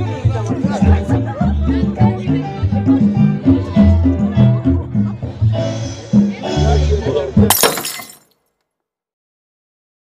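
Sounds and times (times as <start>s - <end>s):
music with bass line: 0.0s - 7.5s.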